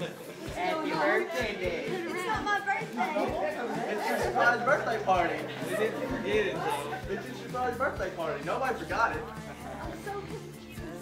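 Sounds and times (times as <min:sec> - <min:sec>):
overlapping indistinct talking: 0:00.0 - 0:11.0.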